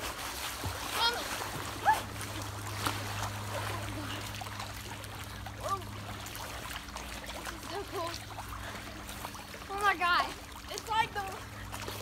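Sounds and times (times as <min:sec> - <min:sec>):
pool water sloshing and splashing: 0:00.0 - 0:12.0
steady low hum: 0:00.0 - 0:12.0.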